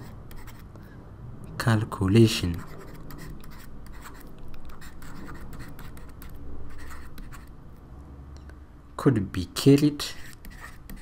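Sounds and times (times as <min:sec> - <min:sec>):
stylus scratching on tablet: 0:00.0 - 0:00.8, 0:02.2 - 0:07.6, 0:09.7 - 0:11.0
low steady hum: 0:00.0 - 0:11.0.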